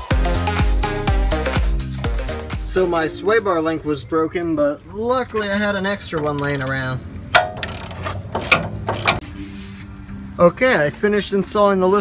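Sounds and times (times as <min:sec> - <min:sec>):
ratchet wrench clicking: 0:06.2 - 0:09.2.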